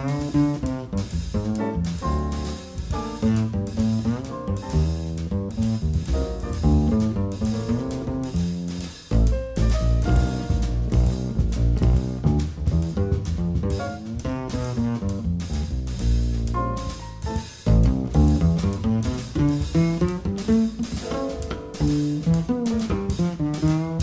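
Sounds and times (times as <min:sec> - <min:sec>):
double bass: 0:00.0 - 0:24.0
drum kit: 0:00.0 - 0:24.0
piano: 0:00.0 - 0:24.0.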